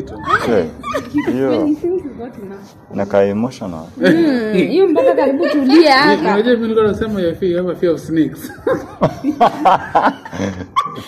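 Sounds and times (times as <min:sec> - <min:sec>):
excited voices laughing: 0:00.1 - 0:01.7, 0:08.4 - 0:11.0.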